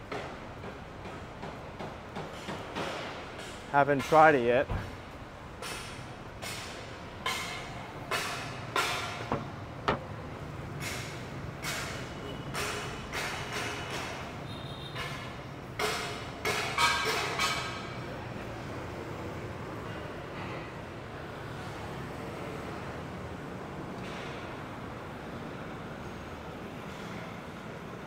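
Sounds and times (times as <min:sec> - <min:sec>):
low traffic hum: 0:00.0 - 0:28.0.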